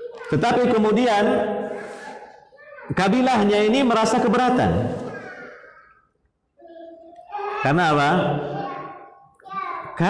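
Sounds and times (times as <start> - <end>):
man speaking: 0.3 - 1.9, 2.9 - 5.2, 7.5 - 8.9.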